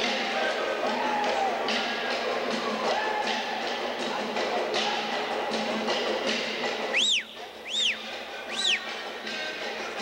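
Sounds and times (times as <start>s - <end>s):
percussive music: 0.0s - 10.0s
high whistles sweeping in pitch: 6.9s - 8.8s.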